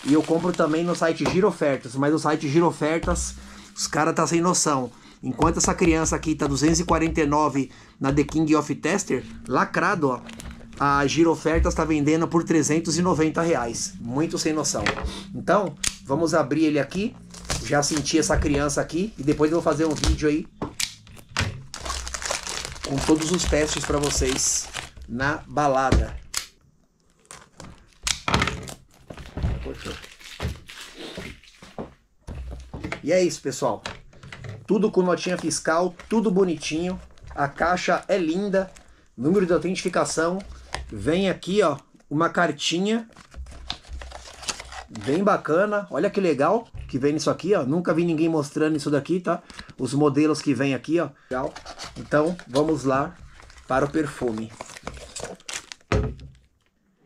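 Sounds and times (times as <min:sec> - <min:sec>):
knife cutting plastic wrap: 0:21.2 - 0:25.1, 0:51.4 - 0:55.9.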